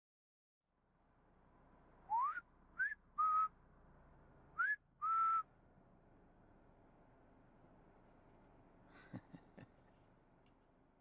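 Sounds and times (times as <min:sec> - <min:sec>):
person whistling short notes: 0:02.1 - 0:03.5, 0:04.6 - 0:05.4.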